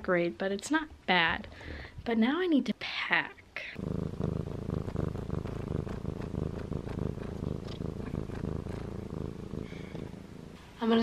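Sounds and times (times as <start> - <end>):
cat purring: 3.5 - 11.0.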